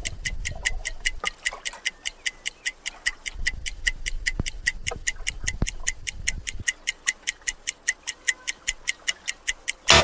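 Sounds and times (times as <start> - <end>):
fast clock ticking: 0.0 - 10.0.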